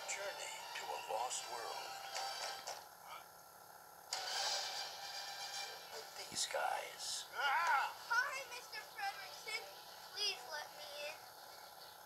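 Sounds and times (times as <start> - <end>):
trailer music with sound effects: 4.1 - 6.1.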